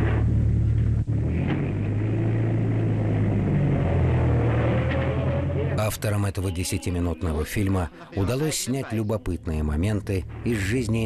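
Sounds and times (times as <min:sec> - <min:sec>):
tractor engine droning: 0:00.0 - 0:08.2, 0:08.9 - 0:11.0.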